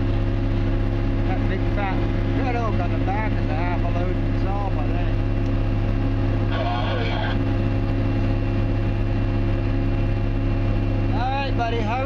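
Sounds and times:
heavy machine engine drone: 0.0 - 12.0.

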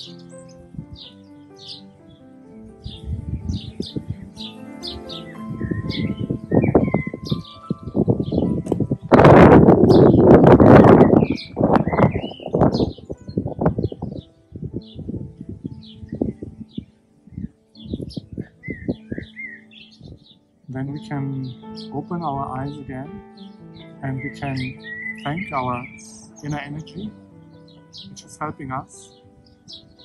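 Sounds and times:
faint background music: 0.0 - 30.0
small birds chirping: 0.0 - 30.0.

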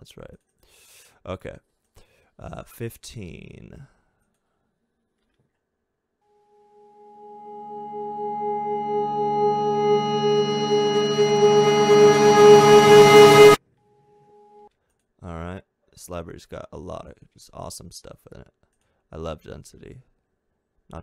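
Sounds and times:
reversed ringing tone: 7.0 - 13.6.

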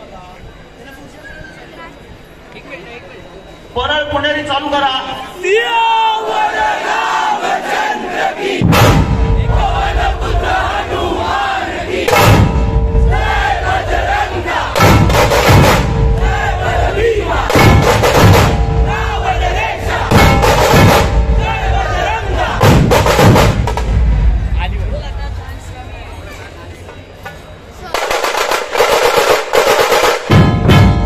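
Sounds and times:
crowd shouting and chanting: 0.0 - 28.5
drum troupe pounding: 6.8 - 25.2, 27.9 - 31.0
loud crashes: 8.6 - 11.4, 12.0 - 25.8, 28.0 - 31.0.

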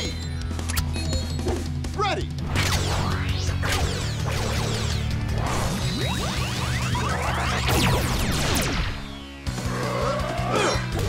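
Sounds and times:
action music: 0.0 - 11.0.

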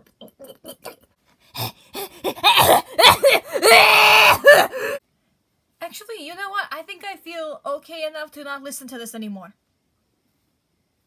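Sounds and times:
person wordless vocalising: 1.6 - 5.0.

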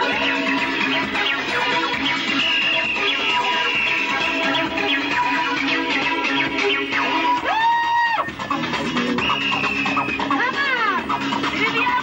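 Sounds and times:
rave dance music: 0.0 - 12.0.

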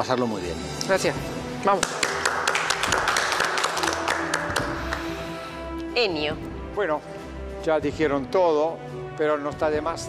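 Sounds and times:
background music with held notes: 0.0 - 10.0
people clapping: 1.6 - 5.4.

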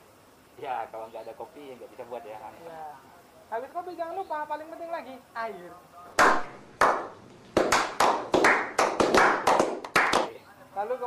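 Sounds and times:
people clapping hands: 6.2 - 10.4.

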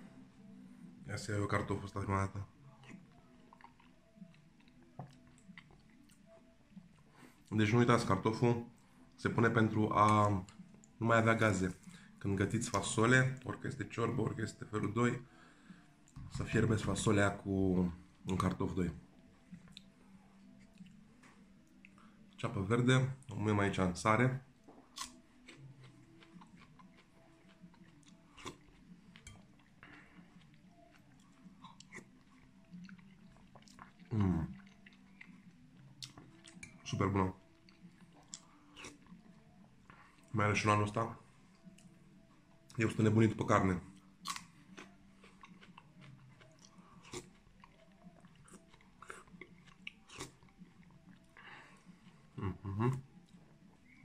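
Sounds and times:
person chewing and eating soup: 2.3 - 7.5, 10.0 - 11.0, 15.3 - 22.4, 24.4 - 54.0.

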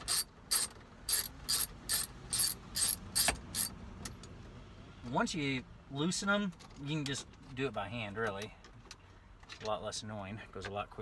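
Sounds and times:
ratchet clicking: 0.0 - 3.7.

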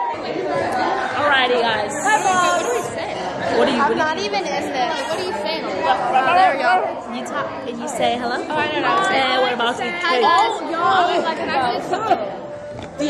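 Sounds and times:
many voices chattering: 0.0 - 13.0.

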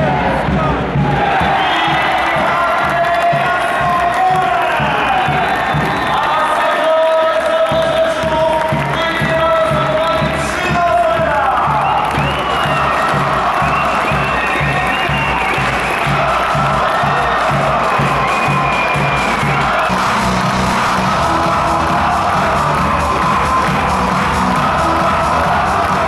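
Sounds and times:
crowd cheering and applauding: 0.0 - 26.0
music with steady low beat: 7.7 - 26.0.

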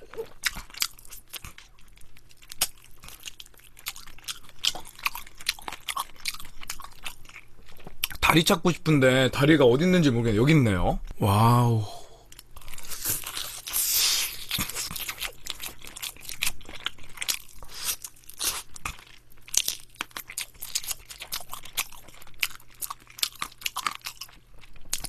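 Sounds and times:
crunching and chewing fried chicken: 0.0 - 8.7, 12.2 - 25.0.

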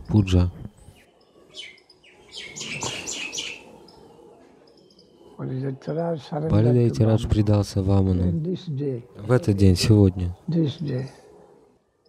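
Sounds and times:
birds chirping faintly: 0.0 - 12.0.

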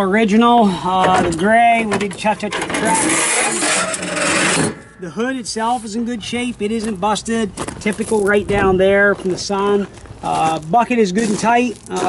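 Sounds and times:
man's voice: 0.0 - 3.2, 5.0 - 12.0.

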